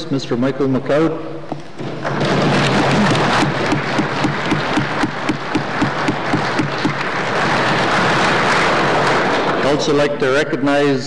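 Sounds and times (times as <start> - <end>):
applause: 2.0 - 10.4.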